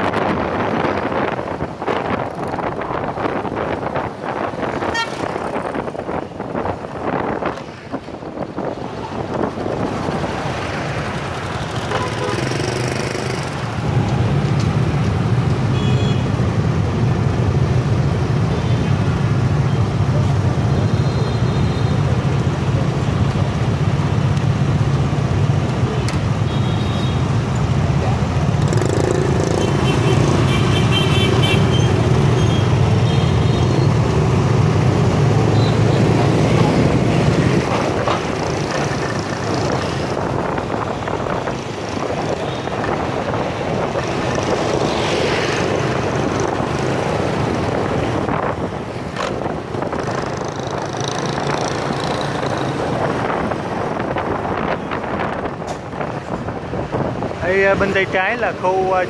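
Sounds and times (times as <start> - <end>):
motorbike riding through traffic: 0.0 - 59.0.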